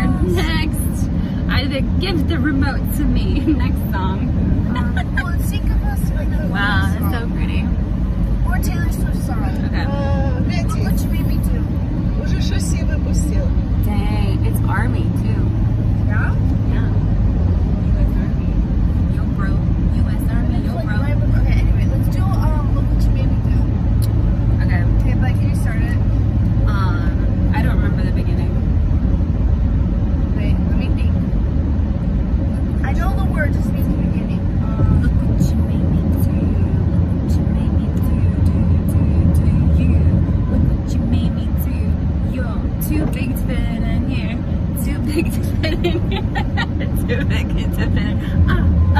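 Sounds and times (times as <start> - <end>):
voices: 0.0 - 28.7, 30.3 - 31.3, 32.4 - 48.9
car cabin rumble: 0.0 - 48.9.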